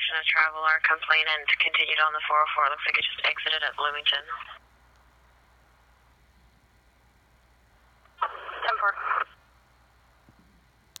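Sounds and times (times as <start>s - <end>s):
tinny radio voice: 0.0s - 4.6s, 8.2s - 9.4s
radio click: 8.0s - 9.3s.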